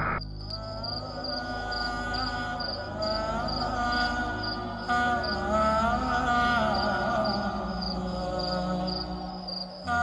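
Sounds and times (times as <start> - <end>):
crickets chirping: 0.0 - 10.0
soft musical drone: 0.0 - 10.0.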